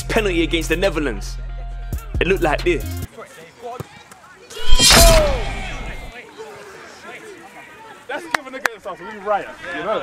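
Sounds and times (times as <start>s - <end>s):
falling tone: 4.6s - 6.1s.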